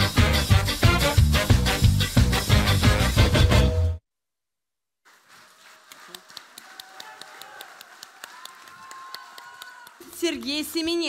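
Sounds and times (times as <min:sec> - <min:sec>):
audience clapping: 0:05.0 - 0:11.0.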